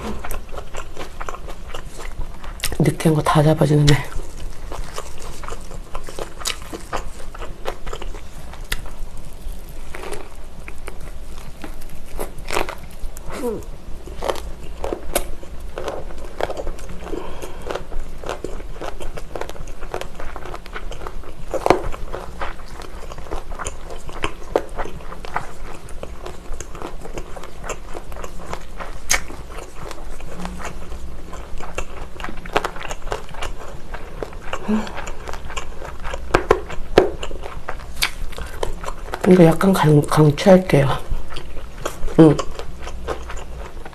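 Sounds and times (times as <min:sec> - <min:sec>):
close chewing with wet crunches: 0:00.0 - 0:43.9.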